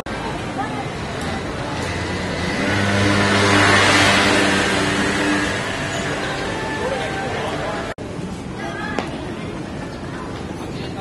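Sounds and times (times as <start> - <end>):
vehicle passing by: 0.8 - 8.0.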